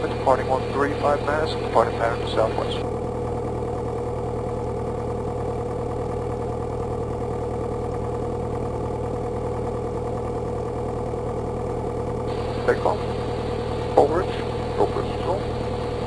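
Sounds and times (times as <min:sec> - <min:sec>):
propeller plane engine running: 0:00.0 - 0:16.0.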